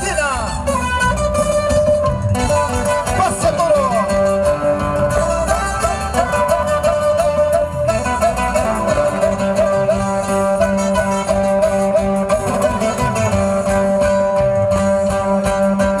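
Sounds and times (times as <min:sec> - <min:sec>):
strummed guitars: 0:00.0 - 0:16.0
violin: 0:00.0 - 0:16.0.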